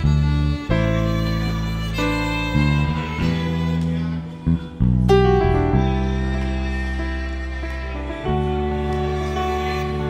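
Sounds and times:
low bass notes: 0:00.0 - 0:10.0
violin: 0:00.0 - 0:10.0.

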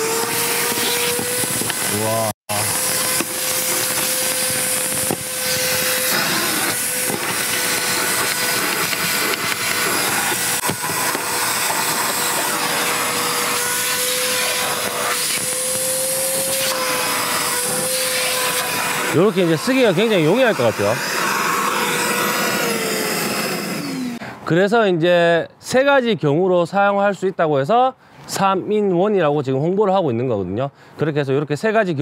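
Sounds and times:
vacuum motor whine: 0:00.0 - 0:24.2
vacuum nozzle sucking over mats: 0:00.0 - 0:24.2.

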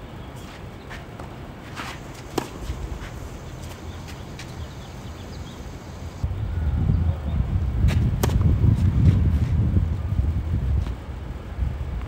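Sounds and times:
tennis ball taps: 0:02.2 - 0:02.8
gusty wind on microphone: 0:06.2 - 0:12.0.

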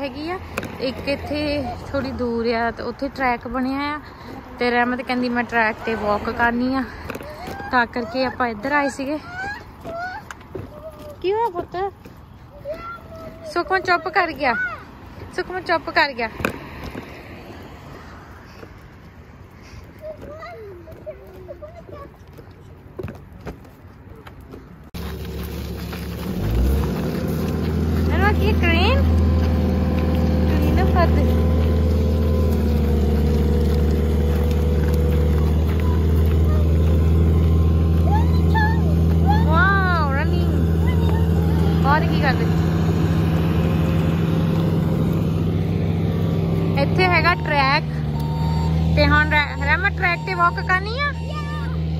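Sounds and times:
large truck engine idling: 0:25.0 - 0:51.9.

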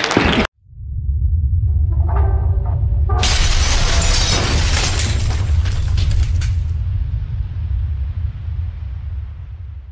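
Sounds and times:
boom with deep rumble: 0:00.6 - 0:09.9
shattering debris crackles: 0:03.2 - 0:06.8.

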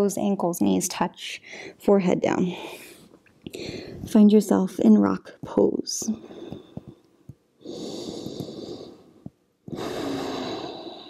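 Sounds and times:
person breathing: 0:01.4 - 0:01.8, 0:02.5 - 0:04.1, 0:06.2 - 0:11.0.

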